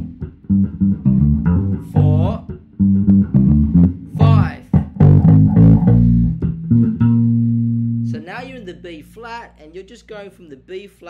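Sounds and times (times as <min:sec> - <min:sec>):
electric bass guitar solo: 0:00.0 - 0:10.2.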